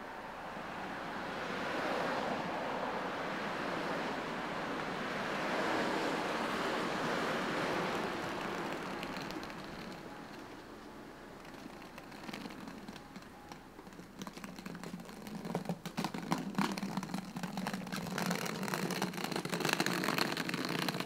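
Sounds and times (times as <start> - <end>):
road traffic passing: 0.0 - 21.0.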